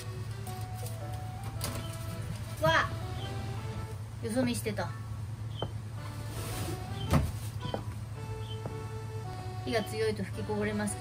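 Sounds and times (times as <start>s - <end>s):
background music: 0.0s - 11.0s
steady low hum: 0.0s - 11.0s.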